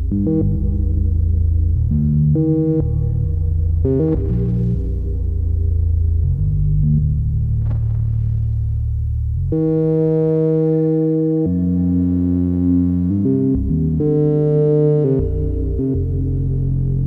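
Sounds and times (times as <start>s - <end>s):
modular synthesizer ambient tones: 0.0s - 17.0s.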